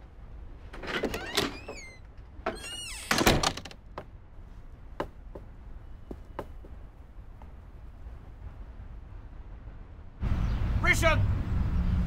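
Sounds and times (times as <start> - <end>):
door shutting with heavy thud: 0.8 - 3.8.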